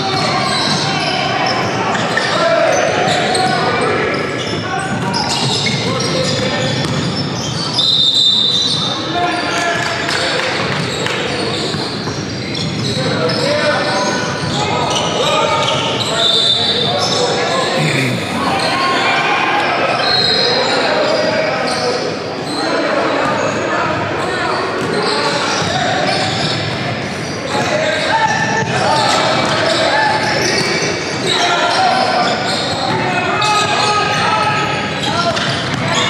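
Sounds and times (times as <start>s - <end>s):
indistinct shouts and chatter: 14.6s - 26.0s.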